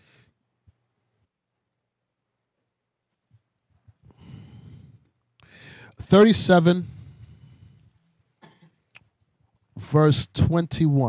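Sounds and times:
faint cough: 8.4s - 8.8s.

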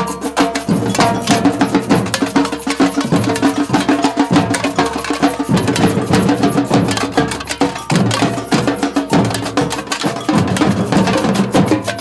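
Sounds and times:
samba percussion band playing: 0.0s - 12.0s.

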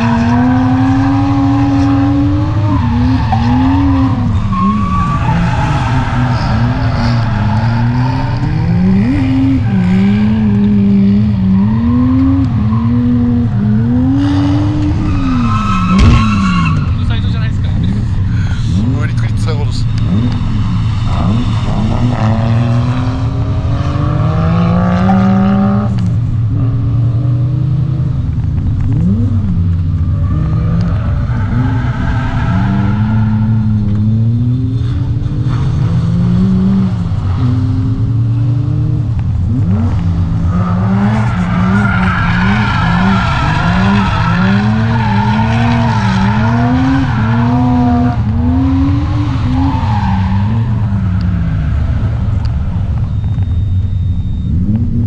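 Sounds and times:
car engine revving: 0.0s - 55.0s
tyres squealing: 14.5s - 17.9s, 40.6s - 52.0s.

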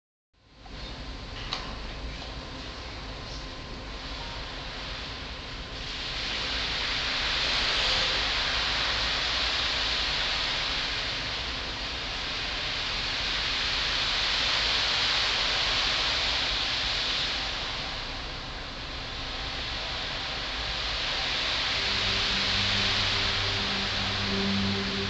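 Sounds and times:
marimba hissing wash: 4.0s - 25.0s.

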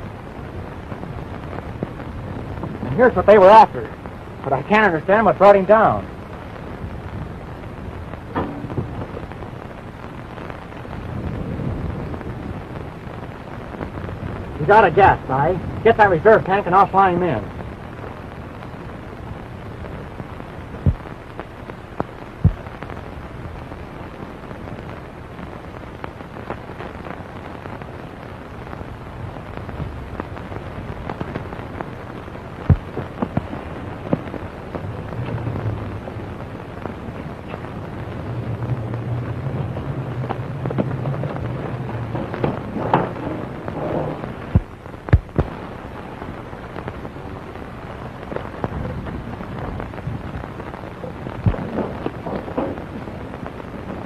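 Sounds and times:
low hum: 0.0s - 25.4s, 26.0s - 54.0s
film soundtrack hiss and crackle: 0.0s - 54.0s
sharp pops: 20.6s - 23.0s, 29.6s - 45.9s, 48.2s - 53.6s.

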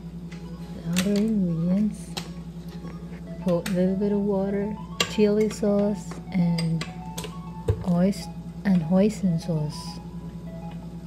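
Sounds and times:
background music: 0.0s - 11.0s
steady low hum: 0.0s - 11.0s.

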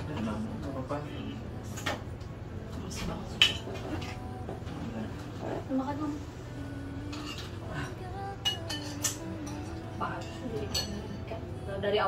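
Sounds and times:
low background hum: 0.0s - 12.0s
spoon clinking against bowl: 8.4s - 11.2s.

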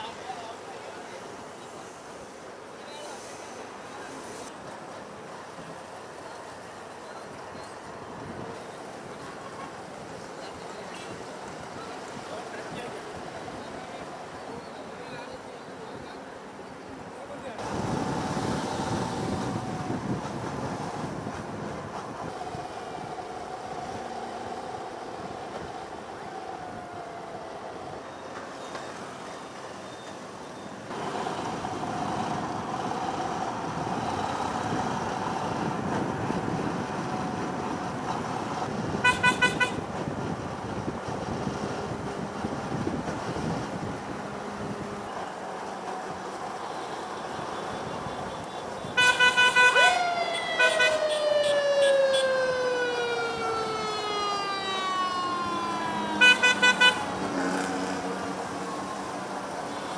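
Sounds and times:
road noise: 0.0s - 59.9s
vehicle horns beeping: 39.0s - 39.8s, 46.7s - 50.0s, 50.6s - 51.6s, 56.2s - 57.1s.

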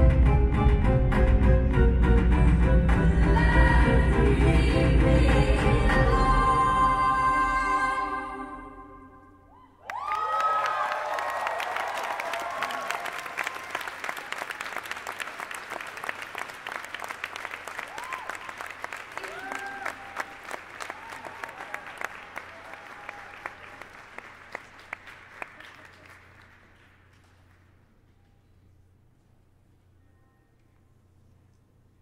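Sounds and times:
whoops and cheers: 9.5s - 14.8s, 17.8s - 18.6s, 19.2s - 23.9s
audience applauding: 9.8s - 27.8s.

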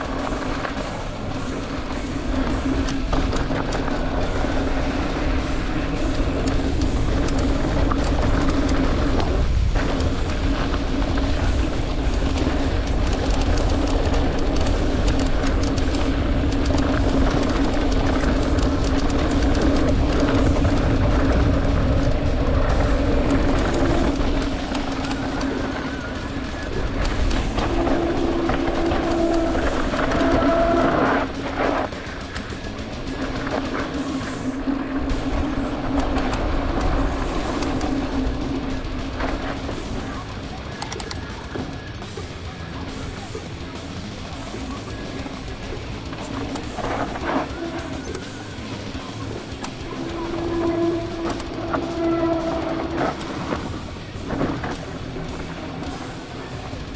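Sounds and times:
wind rumble on microphone: 0.0s - 40.7s
music playing: 0.0s - 56.9s
tyre and trail noise: 0.0s - 56.9s.

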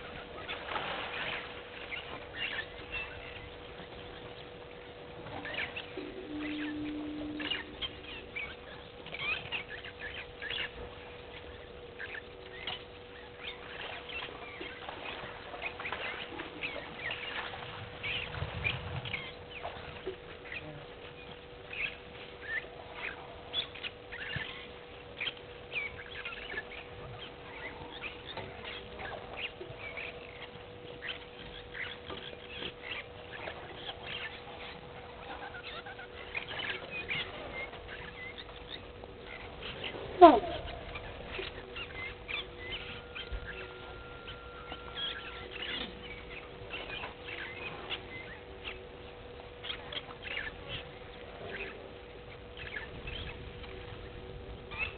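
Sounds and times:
faint hum: 0.0s - 54.9s.

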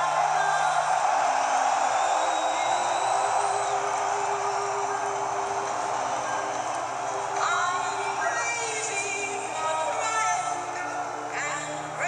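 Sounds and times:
arena crowd noise: 0.0s - 12.0s
faint music: 0.0s - 12.0s.

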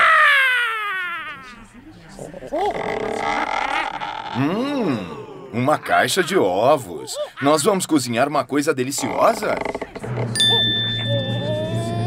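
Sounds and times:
bell-like chime: 10.4s - 11.9s.

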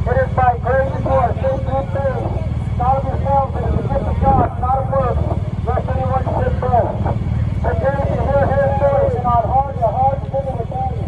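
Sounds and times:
people talking: 0.0s - 11.0s
vehicles driving past: 0.0s - 11.0s.

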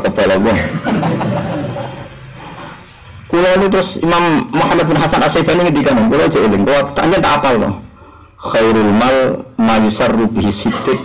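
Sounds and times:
man lecturing: 0.0s - 0.9s, 3.2s - 11.0s
faint murmuring: 0.0s - 11.0s
low room noise: 0.0s - 11.0s.

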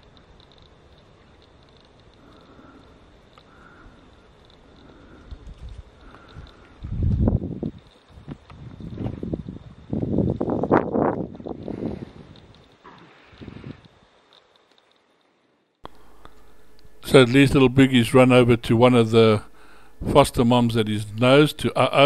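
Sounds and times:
wind gusting on microphone: 5.2s - 14.0s.

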